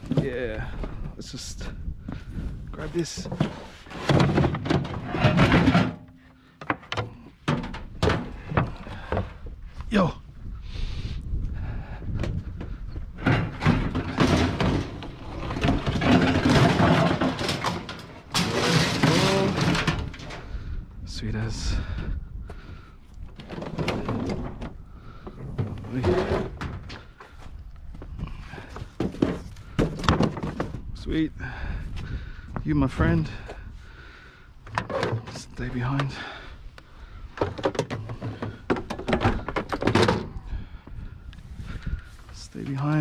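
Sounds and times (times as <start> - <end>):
scraping: 2.8 - 9.4, 12.5 - 20.8
bulky household items clattering: 3.1 - 8.7, 13.2 - 20.4.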